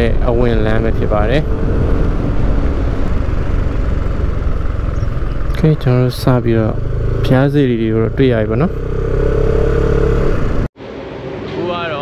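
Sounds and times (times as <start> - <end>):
motorcycle engine running: 0.0 - 10.7.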